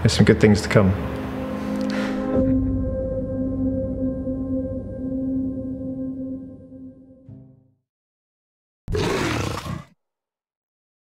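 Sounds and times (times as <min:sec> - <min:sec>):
big cat roar: 0:08.9 - 0:10.0.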